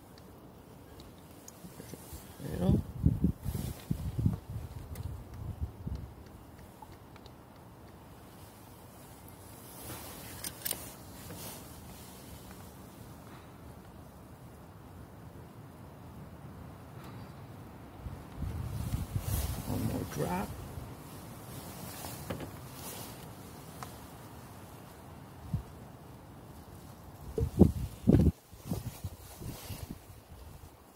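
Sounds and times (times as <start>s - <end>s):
wind rumble on microphone: 1.7s - 7.1s, 17.4s - 30.9s.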